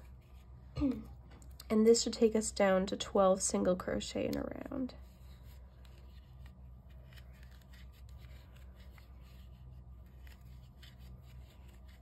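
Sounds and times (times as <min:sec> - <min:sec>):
low steady hum: 0:00.0 - 0:12.0
yarn scratching on crochet hook: 0:05.0 - 0:12.0.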